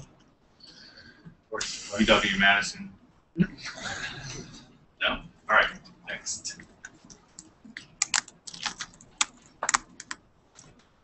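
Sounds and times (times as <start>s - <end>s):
laptop keyboard typing: 6.8s - 10.9s.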